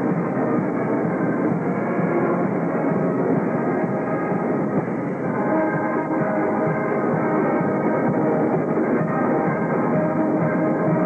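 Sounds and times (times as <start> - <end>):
muffled marching band: 0.0 - 11.0.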